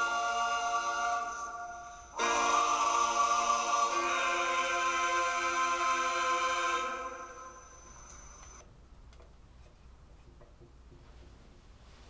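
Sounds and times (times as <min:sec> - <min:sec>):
choir holding a chord: 0:00.0 - 0:08.6
low room noise: 0:00.0 - 0:12.0.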